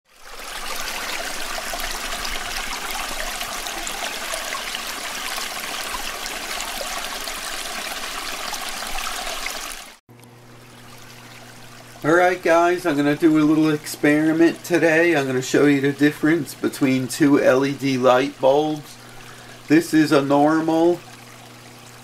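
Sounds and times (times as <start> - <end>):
water trickling: 0.1 - 22.0.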